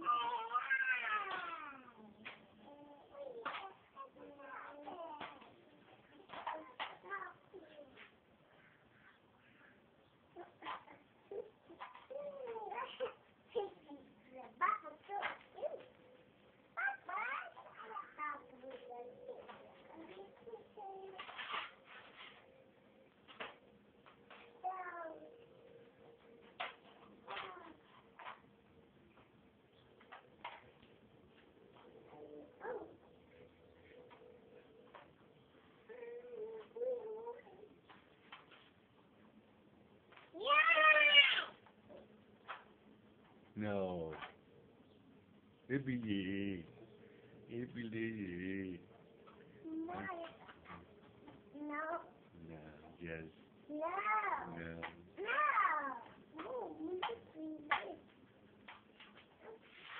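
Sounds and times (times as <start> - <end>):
young children calling and babbling: 0.0 - 22.3, 24.3 - 25.6, 26.5 - 28.4, 32.0 - 34.2, 35.8 - 38.0, 40.1 - 42.1, 49.6 - 53.0, 53.6 - 58.1.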